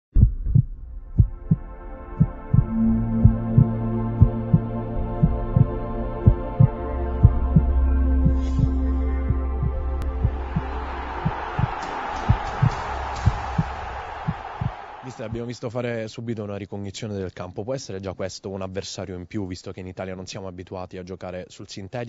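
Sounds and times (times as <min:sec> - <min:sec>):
heartbeat-like double thump: 0:00.1 - 0:04.6, 0:08.3 - 0:08.7
deep bass note: 0:00.2 - 0:11.7
synthesizer drone: 0:01.0 - 0:15.0.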